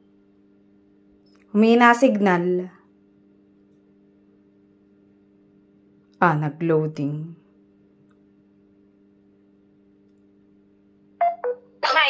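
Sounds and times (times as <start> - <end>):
faint electronic hum: 0.0 - 12.0.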